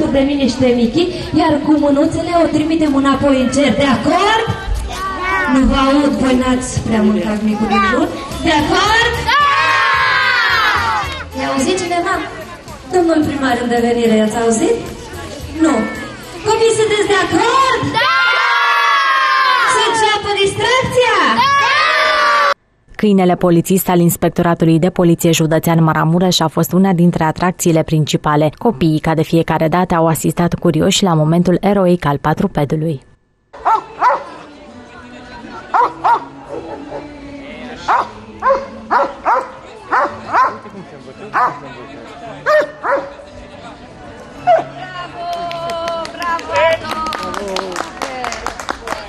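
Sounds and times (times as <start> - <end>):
children shouting together: 4.9 - 5.6, 9.2 - 11.3, 18.0 - 20.0, 21.4 - 22.6
children cheering: 9.3 - 11.3, 18.0 - 20.0, 21.4 - 22.6
dog barking: 33.6 - 34.4, 35.7 - 37.1, 37.9 - 40.6, 41.3 - 41.6, 42.5 - 43.2.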